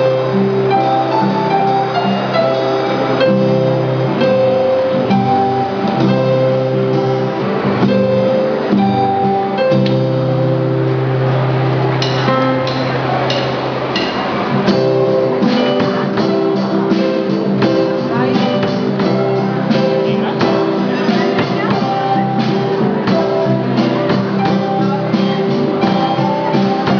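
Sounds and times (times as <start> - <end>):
drum and cymbal hits: 0.0 - 26.9
drum kit: 0.0 - 26.9
held keyboard notes: 0.0 - 26.9
strummed acoustic guitar: 0.0 - 26.9.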